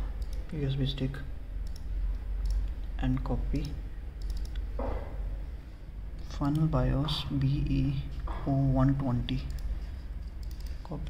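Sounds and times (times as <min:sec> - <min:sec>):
steady low hum: 0:00.0 - 0:11.0
computer mouse clicks: 0:00.2 - 0:00.5, 0:01.6 - 0:02.8, 0:03.5 - 0:04.7, 0:09.3 - 0:11.0.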